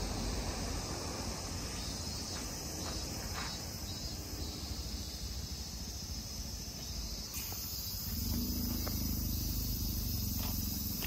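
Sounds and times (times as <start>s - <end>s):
insects singing shrilly: 0.0s - 11.0s.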